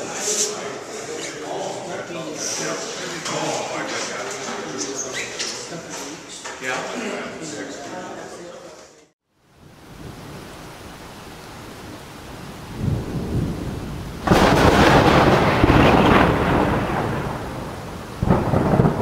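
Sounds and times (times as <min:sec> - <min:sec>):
rain hissing: 0:09.3 - 0:19.0
thunder rumbling and cracking: 0:12.3 - 0:19.0.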